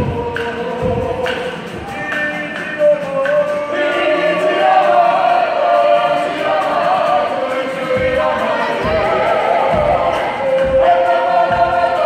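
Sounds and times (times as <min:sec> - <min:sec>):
group of people singing: 0:00.0 - 0:12.0.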